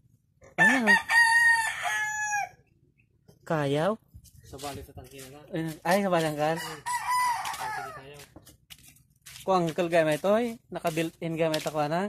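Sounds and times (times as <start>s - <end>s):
rooster crowing: 0.6s - 2.6s, 6.5s - 8.1s.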